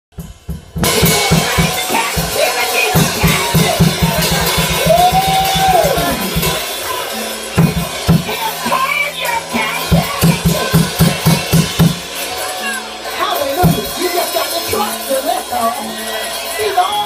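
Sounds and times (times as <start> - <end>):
drum kit playing fast beat: 0.1 - 17.0.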